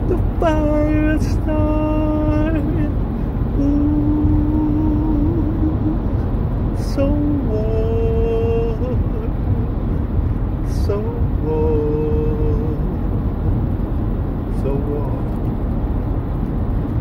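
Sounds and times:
road noise inside moving car: 0.0 - 17.0.

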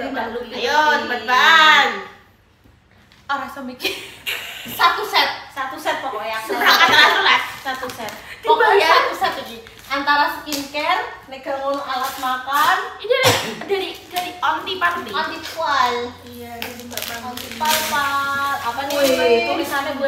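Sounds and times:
women talking: 0.0 - 2.2, 4.6 - 20.0.

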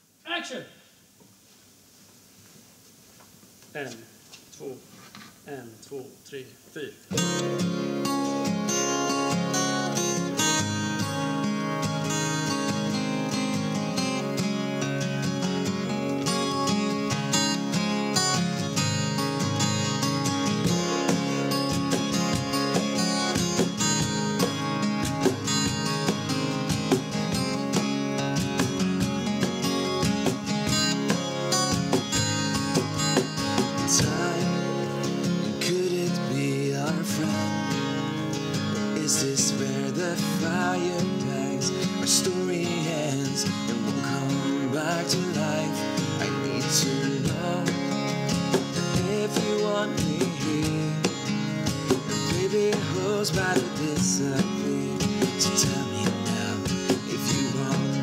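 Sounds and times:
acoustic guitars strumming: 7.1 - 58.0.

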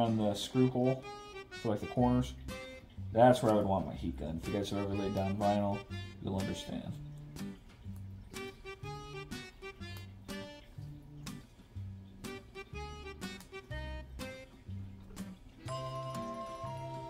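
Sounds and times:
plucked notes over bass line: 0.0 - 17.0.

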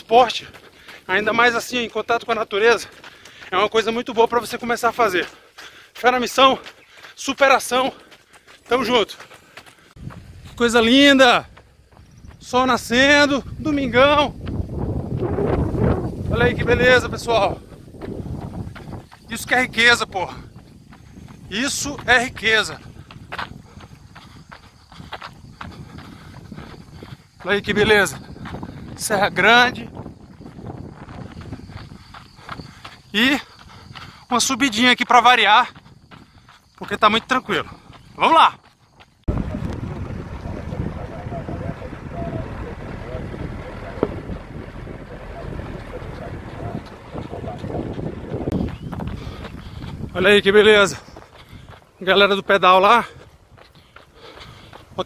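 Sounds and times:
footsteps on dirt road: 0.0 - 55.0
wind buffeting microphone: 9.8 - 35.0, 35.7 - 55.0.

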